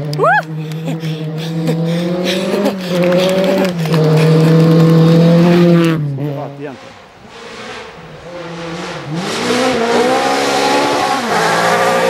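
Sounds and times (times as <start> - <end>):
rally car engine revving high: 0.0 - 12.0.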